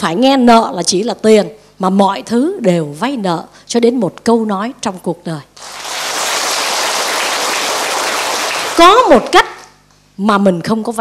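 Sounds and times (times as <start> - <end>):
audience applauding: 5.6 - 9.0.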